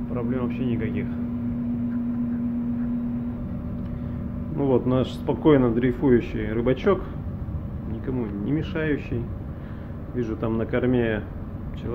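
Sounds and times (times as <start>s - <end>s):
ship machinery rumbling: 0.0s - 11.9s.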